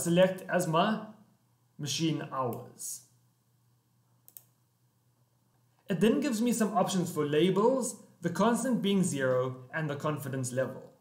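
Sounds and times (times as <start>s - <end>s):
computer mouse clicking: 4.2s - 4.6s.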